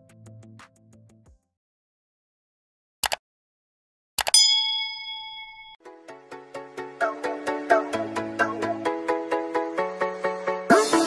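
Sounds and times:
short clicks: 4.2 - 4.4
bell-like ding: 4.3 - 5.8.

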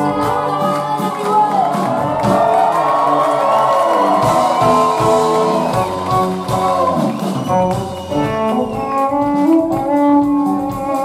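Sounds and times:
drum kit beating: 0.0 - 11.0.

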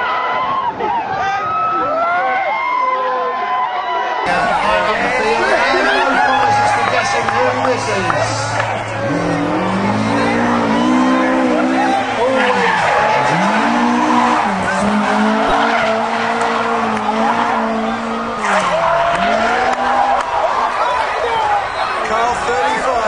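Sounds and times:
car engine revving hard: 4.3 - 20.2.

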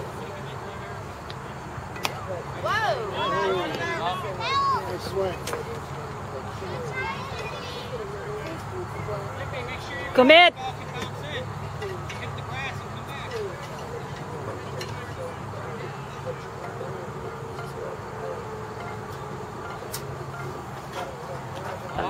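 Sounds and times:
distant voices calling out: 0.0 - 22.0
steady low hum: 0.0 - 22.0.

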